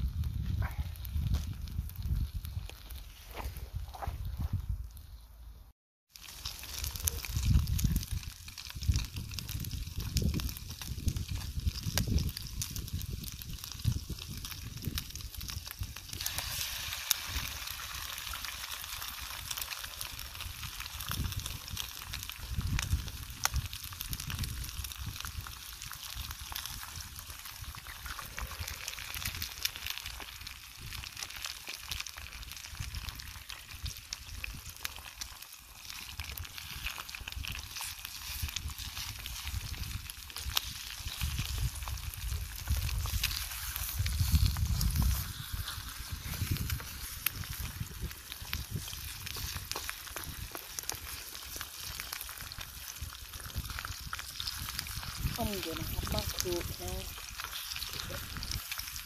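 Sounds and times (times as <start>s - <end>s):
bacon and eggs sizzling: 0.0s - 3.2s, 6.1s - 59.0s.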